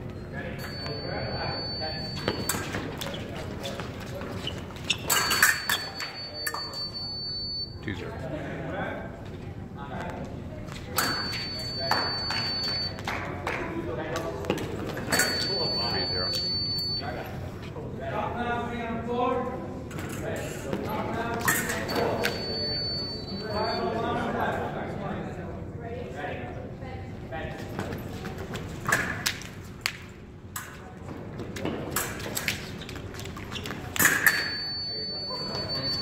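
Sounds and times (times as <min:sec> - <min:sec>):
high scoring machine beep: 0:00.6 - 0:02.7, 0:05.1 - 0:07.8, 0:11.0 - 0:13.0, 0:15.1 - 0:17.2, 0:21.9 - 0:24.0, 0:34.2 - 0:36.0
fencing blades clicking: 0:34.0 - 0:34.4.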